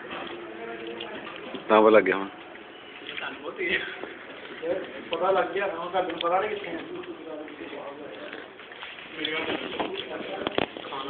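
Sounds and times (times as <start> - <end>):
faint background murmur: 0.0 - 11.0.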